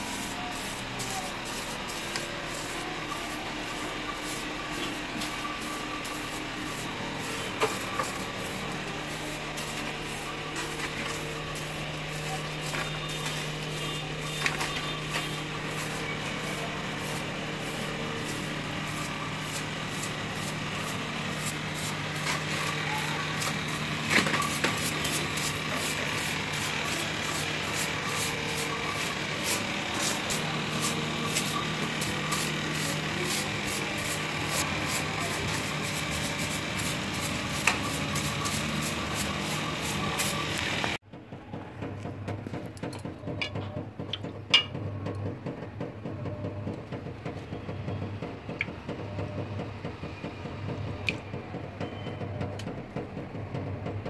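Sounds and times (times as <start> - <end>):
broom sweeping concrete floor: 0.0 - 41.0.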